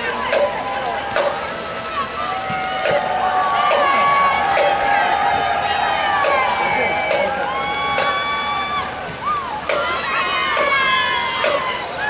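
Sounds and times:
spectators talking and calling out: 0.0s - 12.0s.

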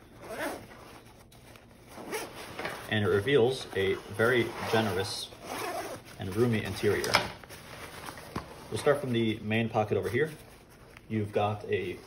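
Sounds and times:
nylon fabric shifting: 0.0s - 12.0s
backpack zipper being pulled open: 0.1s - 1.0s, 1.9s - 2.6s, 3.9s - 6.1s.

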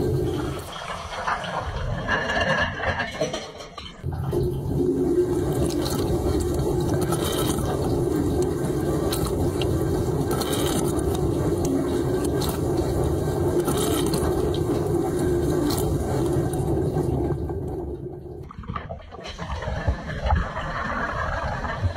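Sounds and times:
low hum: 0.0s - 21.9s.

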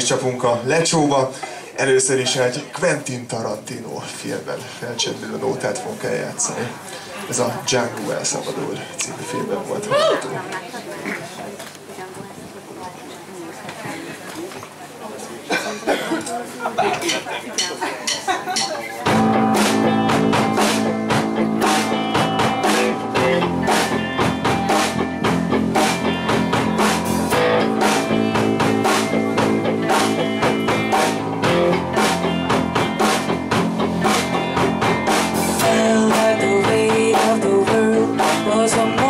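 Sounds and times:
live rock band playing: 17.5s - 39.0s.

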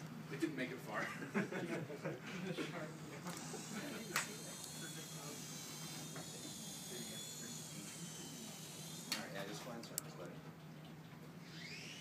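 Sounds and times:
small electric motor whine: 2.7s - 9.6s, 11.4s - 12.0s.

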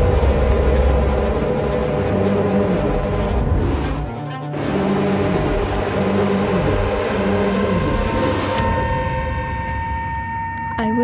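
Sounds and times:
loud rumbling drone: 0.0s - 10.1s
steady high tone: 4.6s - 11.0s.

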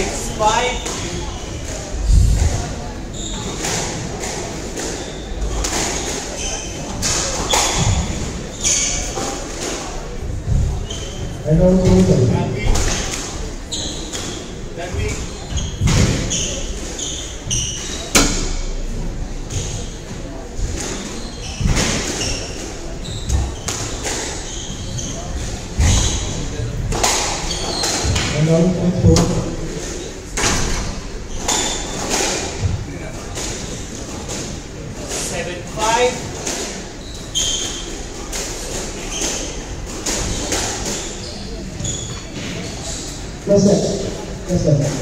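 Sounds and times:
shoes squeaking on wooden floor: 0.0s - 45.0s.

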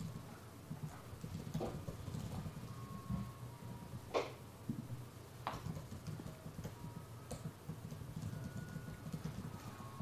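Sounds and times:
computer keyboard typing: 0.0s - 3.2s, 5.5s - 9.8s
low background hum: 0.0s - 10.0s.

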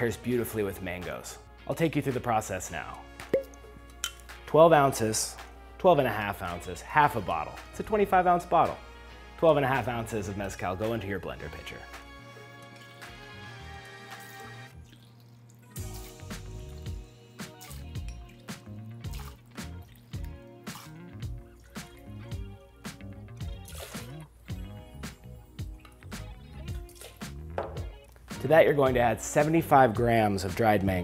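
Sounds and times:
background music with light beat: 0.0s - 15.0s, 15.6s - 31.0s
liquid splashing and dripping: 3.2s - 4.4s, 13.8s - 28.4s
liquid pouring from glass bottle: 3.3s - 4.2s, 14.7s - 16.2s, 17.6s - 22.7s, 23.4s - 24.6s, 26.7s - 27.9s.

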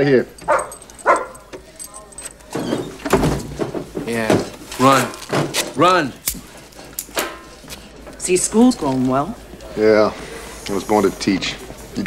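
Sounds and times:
dog barking: 0.4s - 1.5s
dog whining: 0.4s - 3.0s.

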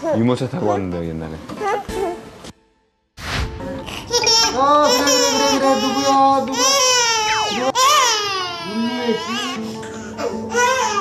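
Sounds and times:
toddler crying: 4.1s - 11.0s.

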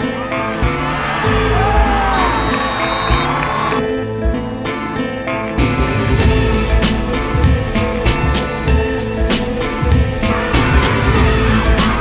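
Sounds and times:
crowd cheering: 0.0s - 12.0s
music with a steady beat: 0.0s - 12.0s.

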